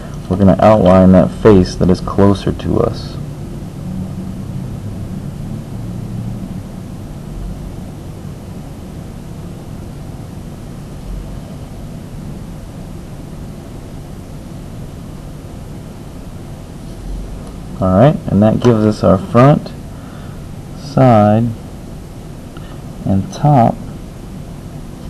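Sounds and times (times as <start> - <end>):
background hum and hiss: 0.0 - 25.0.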